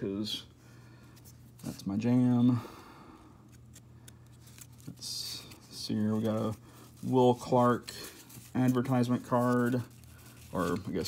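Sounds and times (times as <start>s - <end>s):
low steady hum: 0.0s - 11.0s
card pack wrapper rustling: 3.5s - 11.0s.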